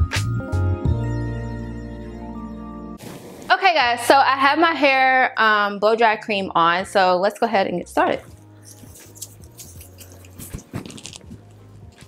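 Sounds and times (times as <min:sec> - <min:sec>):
quiet background music: 0:03.6 - 0:12.0
hands rustling through hair: 0:08.7 - 0:12.0.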